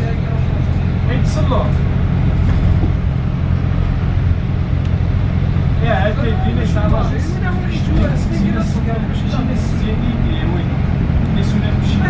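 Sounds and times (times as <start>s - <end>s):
low engine hum: 0.0s - 12.0s
road noise: 0.0s - 12.0s.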